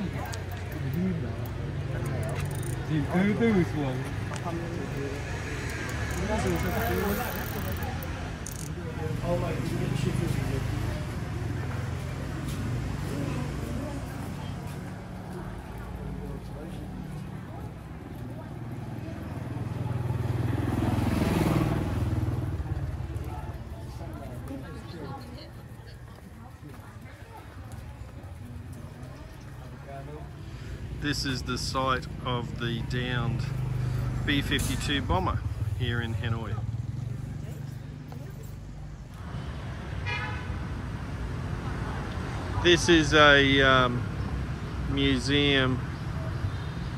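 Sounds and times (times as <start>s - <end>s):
motorbike passing by: 0.0s - 25.5s, 28.2s - 46.9s
city traffic rumble: 0.0s - 46.9s
vehicle horn toot: 40.0s - 40.5s.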